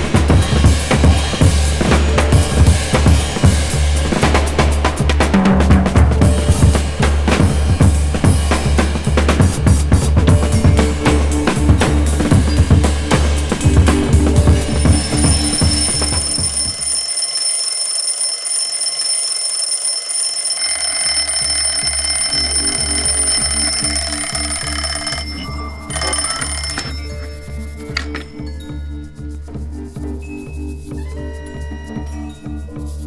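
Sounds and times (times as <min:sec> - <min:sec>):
background music with drum beat: 0:00.0 - 0:16.8, 0:21.7 - 0:33.0
alarm clock ringing: 0:14.4 - 0:28.6.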